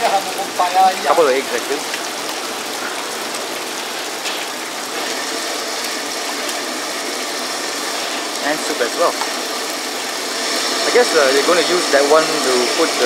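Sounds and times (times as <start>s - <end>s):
gas burner flame rushing: 1.9s - 13.0s.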